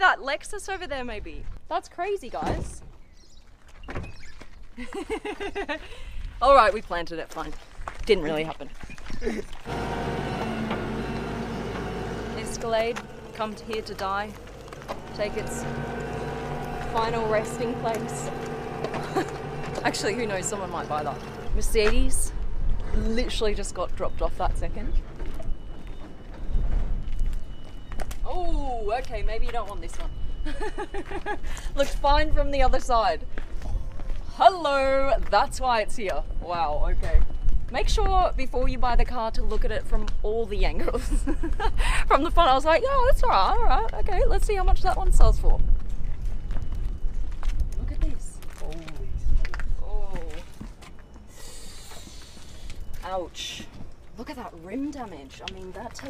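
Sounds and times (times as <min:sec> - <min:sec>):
footsteps on pavement: 0:02.9 - 0:09.7, 0:10.7 - 0:28.3, 0:28.9 - 0:30.1, 0:31.0 - 0:36.2, 0:44.8 - 0:56.0
low rumble: 0:09.8 - 0:28.3.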